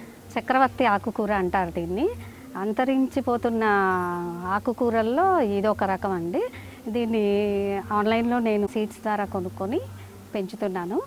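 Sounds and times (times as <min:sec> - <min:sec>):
woman speaking: 0:00.3 - 0:11.0.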